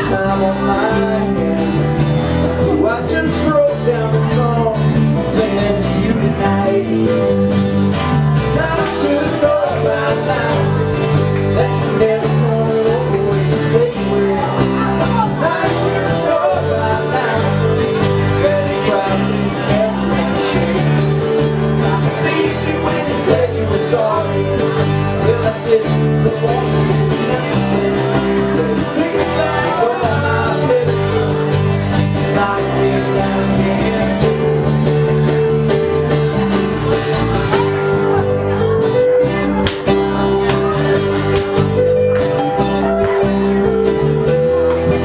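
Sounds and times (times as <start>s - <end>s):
drums: 0.0s - 45.0s
electric bass guitar: 0.0s - 45.0s
strummed acoustic guitars: 0.0s - 45.0s.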